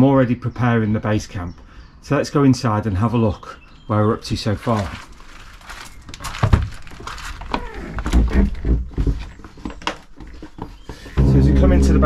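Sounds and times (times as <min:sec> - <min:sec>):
low steady sound: 0:11.2 - 0:12.0.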